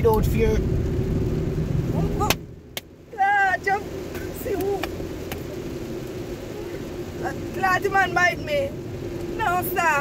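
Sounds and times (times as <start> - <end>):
car cabin road and engine rumble: 0.0 - 10.0.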